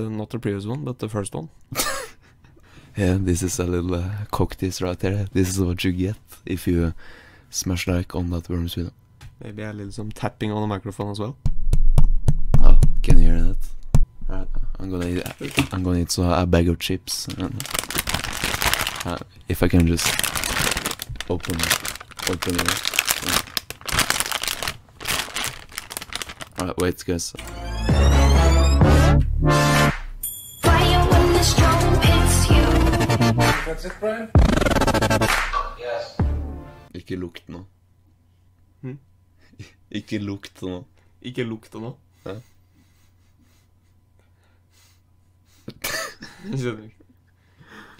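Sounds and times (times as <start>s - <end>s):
faint low hum: 0.0s - 27.4s
chip bag crinkling: 15.0s - 15.9s, 17.2s - 27.0s.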